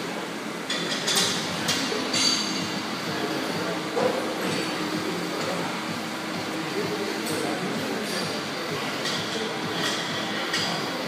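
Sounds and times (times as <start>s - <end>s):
gym background din: 0.6s - 11.0s.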